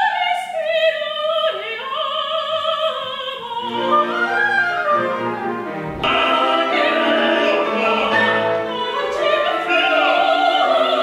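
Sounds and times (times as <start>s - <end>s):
orchestra strings playing: 3.6s - 11.0s.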